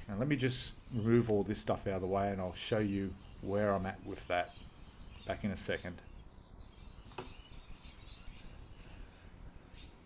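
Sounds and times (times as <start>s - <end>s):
faint bird chirps: 0.2s - 10.0s.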